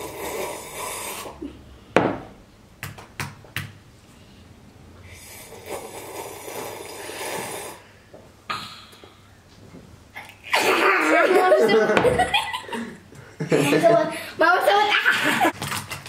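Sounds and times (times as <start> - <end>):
slurping from a mug: 0.0 - 1.4, 5.2 - 7.9
laughter: 10.5 - 14.0, 15.0 - 15.5.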